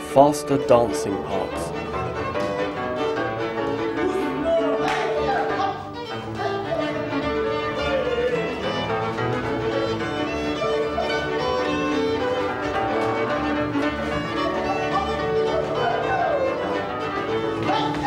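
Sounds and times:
string band playing dance tune: 0.0 - 18.0
violin melody: 0.0 - 18.0.

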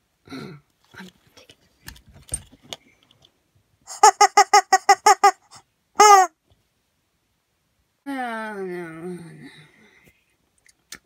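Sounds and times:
light handling noise: 0.7 - 3.4
rubber chicken squeaks: 3.9 - 6.3.

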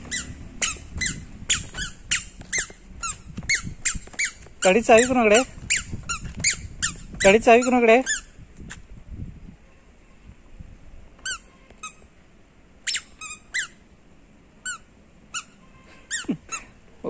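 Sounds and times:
squeaker shoes squeaking: 0.0 - 8.8, 11.2 - 12.1, 12.8 - 13.8, 14.7 - 16.7.

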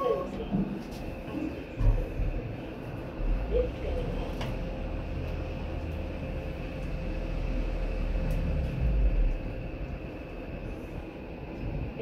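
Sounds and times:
elevator car rumble and whine: 0.0 - 12.0.

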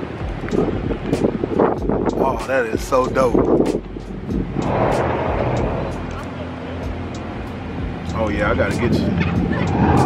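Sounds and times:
car engine idling: 2.8 - 10.0
people chattering: 5.5 - 7.2.

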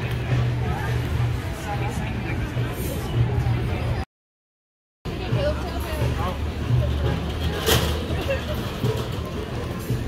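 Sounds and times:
chatter of passers-by: 0.0 - 4.1, 5.1 - 10.0.

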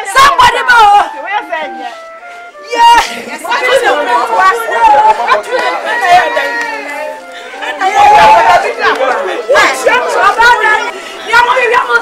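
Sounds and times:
faint music: 0.0 - 12.0
people talking and calling out: 0.0 - 12.0.

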